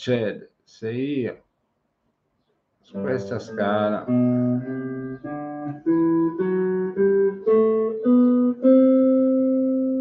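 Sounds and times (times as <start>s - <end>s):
electric guitar picking scale notes: 3.0s - 10.0s.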